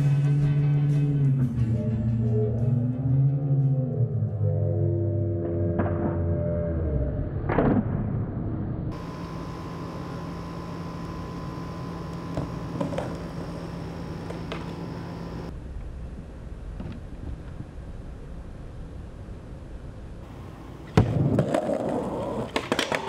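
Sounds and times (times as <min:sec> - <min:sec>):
steady electrical hum: 0:08.9 - 0:23.0
skateboard tail and wheel clicks: 0:11.0 - 0:15.5, 0:20.9 - 0:23.0
skateboard clacking on concrete: 0:21.0 - 0:23.0.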